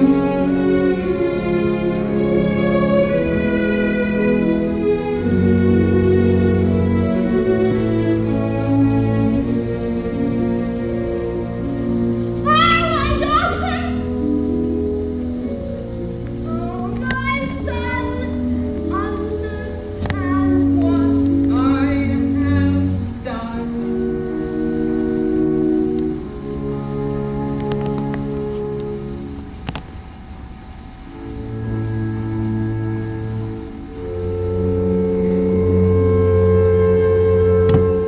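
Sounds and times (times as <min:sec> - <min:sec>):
orchestra accompaniment: 0:00.0 - 0:38.0
woman singing: 0:16.5 - 0:23.9.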